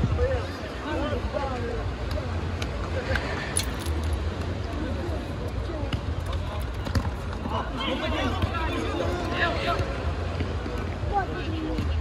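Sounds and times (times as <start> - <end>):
ball being kicked: 5.8 - 7.5.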